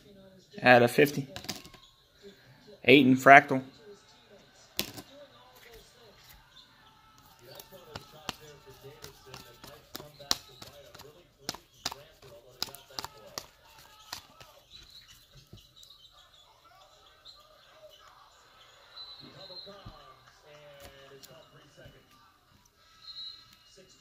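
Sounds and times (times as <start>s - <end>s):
faint voices murmuring: 0.0s - 24.0s
cards being shuffled: 7.2s - 15.6s.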